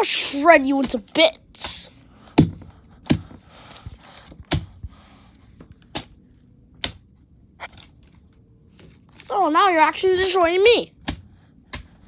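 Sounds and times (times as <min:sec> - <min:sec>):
paper rustling: 0:07.6 - 0:09.6.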